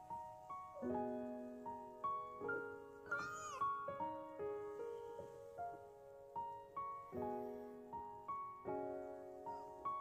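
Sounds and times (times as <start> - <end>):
soft piano music: 0.0 - 10.0
cat meowing: 3.1 - 3.7.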